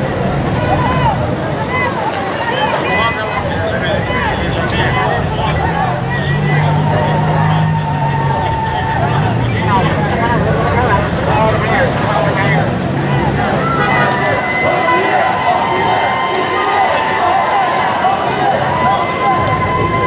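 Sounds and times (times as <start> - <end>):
crowd babble: 0.0 - 20.0
motorcycle and car engines: 0.0 - 20.0.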